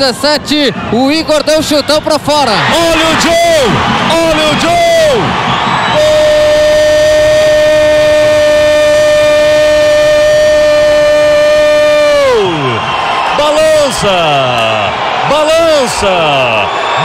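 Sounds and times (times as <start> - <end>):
commentator's drawn-out goal cry: 0.0 - 16.7
crowd noise: 0.0 - 17.0.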